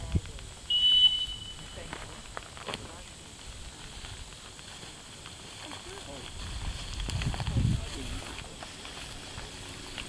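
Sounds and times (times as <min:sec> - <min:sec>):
dog whistle blast: 0:00.7 - 0:01.8.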